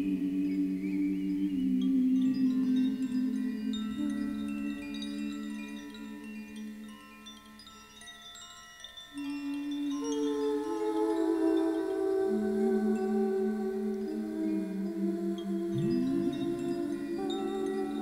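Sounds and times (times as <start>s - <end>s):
low sustained drone tones: 0.0s - 6.6s, 9.5s - 18.0s
high bell-like ringing notes: 0.8s - 12.4s, 14.0s - 18.0s.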